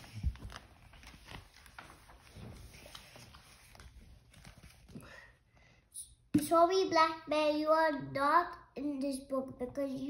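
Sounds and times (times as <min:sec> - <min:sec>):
book pages rustling: 0:00.0 - 0:05.0.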